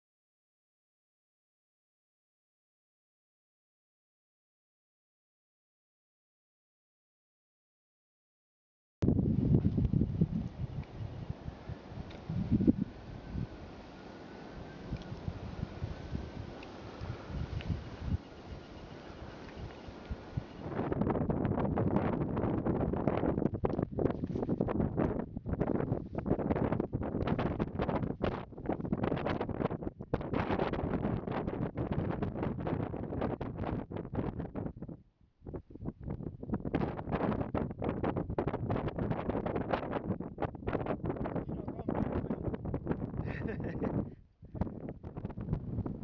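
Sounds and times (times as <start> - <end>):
wind buffeting microphone: 9.0 - 13.8, 14.5 - 46.0.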